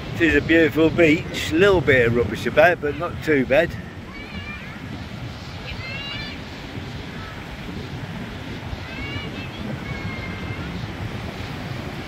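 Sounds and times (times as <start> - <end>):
small waves breaking on shore: 0.0 - 12.0
wind on microphone: 0.0 - 12.0.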